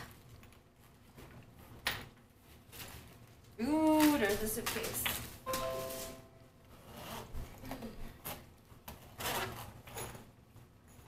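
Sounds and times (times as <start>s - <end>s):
suitcase zipper rasping: 6.8s - 7.3s.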